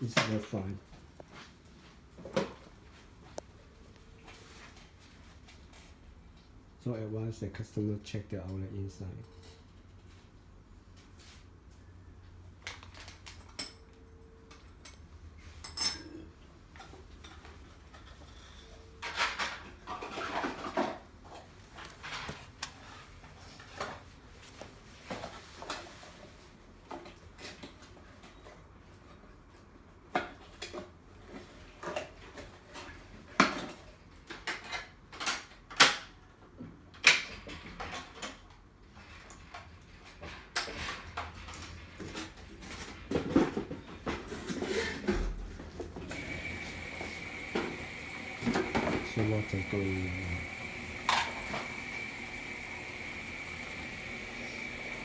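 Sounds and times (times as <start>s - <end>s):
washing machine running: 46.0s - 55.0s.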